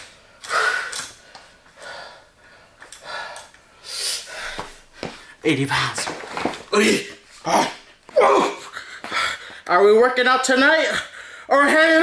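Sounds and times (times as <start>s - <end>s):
heavy breathing exhalations: 0.4s - 5.4s, 8.6s - 9.7s.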